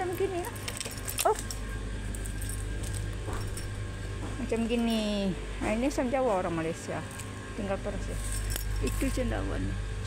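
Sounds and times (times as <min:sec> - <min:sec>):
steady low hum: 0:00.0 - 0:10.0
light clinks: 0:08.2 - 0:09.3.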